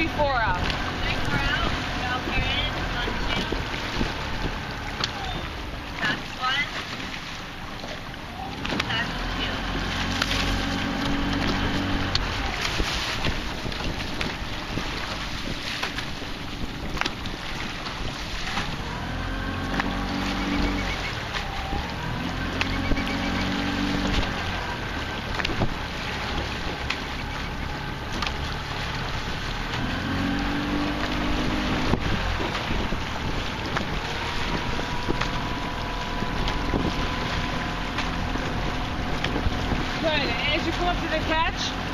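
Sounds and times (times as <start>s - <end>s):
wind on microphone: 0.0s - 6.2s, 9.6s - 41.9s
motor boat engine hum: 0.0s - 41.9s.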